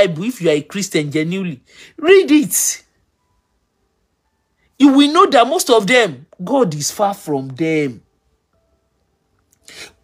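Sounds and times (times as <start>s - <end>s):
soft breathy noise: 1.6s - 2.0s.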